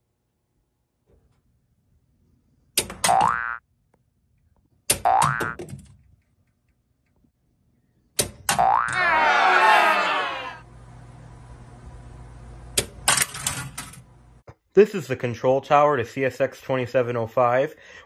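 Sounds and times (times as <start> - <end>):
cartoon boing sound effects: 3.1 - 3.6, 5.0 - 5.6, 8.5 - 9.0
low steady hum: 9.0 - 18.0.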